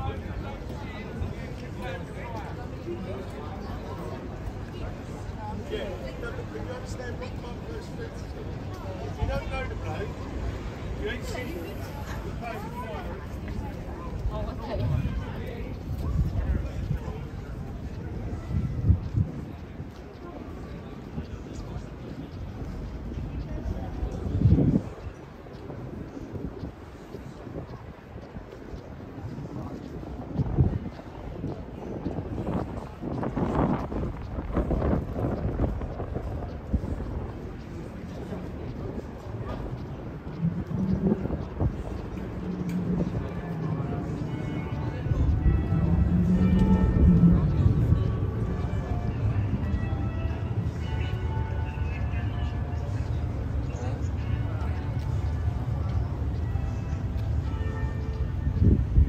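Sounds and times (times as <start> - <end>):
passers-by talking: 0.0 - 59.0
traffic passing: 1.9 - 59.0
low engine rumble: 27.6 - 59.0
bells ringing: 41.8 - 59.0.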